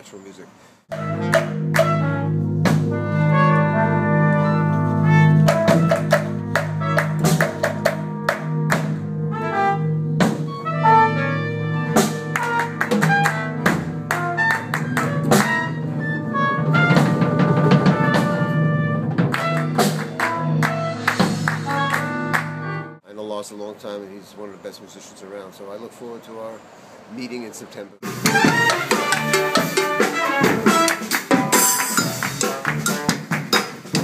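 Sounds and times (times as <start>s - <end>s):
jazz big band playing: 0.9s - 23.0s, 28.0s - 34.0s.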